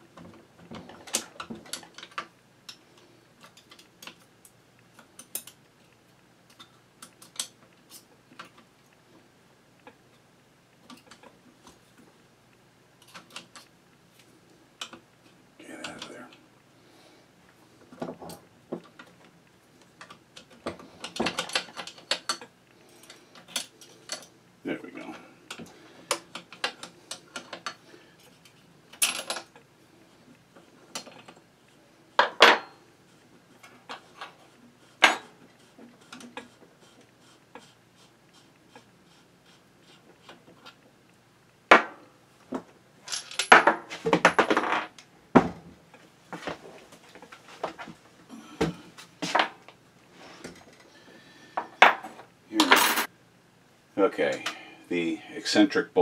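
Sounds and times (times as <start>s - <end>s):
metal parts clinking: 43.1s - 44.5s.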